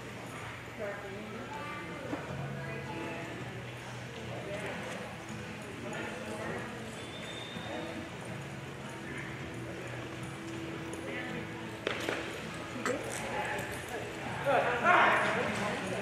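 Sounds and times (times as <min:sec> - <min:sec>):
murmur of voices: 0:00.0 - 0:16.0.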